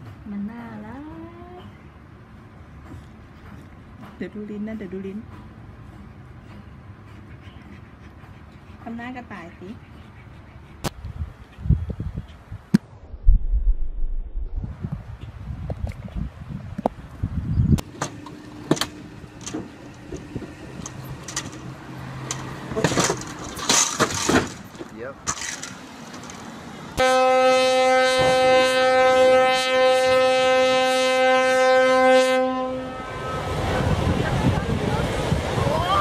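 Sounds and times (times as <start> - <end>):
low rushing noise: 11.7 - 18.0
knocks and clatter: 17.8 - 26.5
loud horn blast: 27.0 - 33.8.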